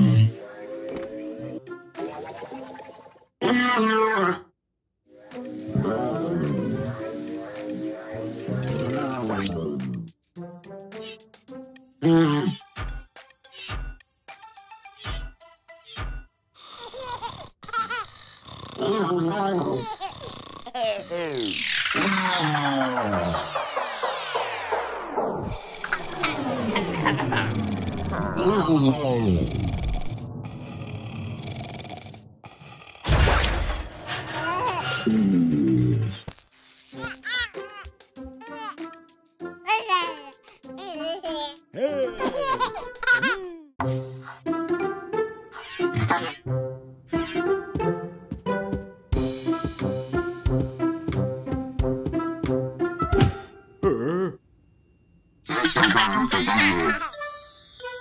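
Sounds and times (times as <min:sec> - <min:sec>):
cartoon crash: 0:21.4 - 0:27.6, 0:33.1 - 0:35.2
cartoon music with deep hit: 0:21.5 - 0:31.6, 0:33.0 - 0:36.2, 0:42.0 - 0:54.1.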